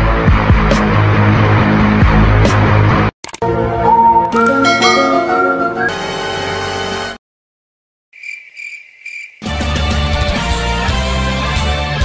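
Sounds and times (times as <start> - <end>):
loud music with bass: 0.0 - 3.1
cricket chirping trill: 8.2 - 9.4.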